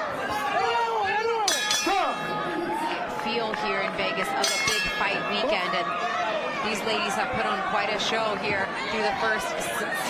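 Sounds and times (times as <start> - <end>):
crowd shouting: 0.0 - 10.0
boxing ring bell ringing: 1.5 - 2.3, 4.4 - 5.4.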